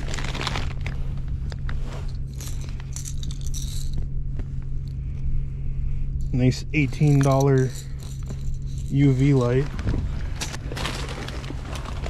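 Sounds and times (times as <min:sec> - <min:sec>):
plastic bag crinkling: 0:00.0 - 0:03.8, 0:07.6 - 0:12.0
steady low hum: 0:00.0 - 0:12.0.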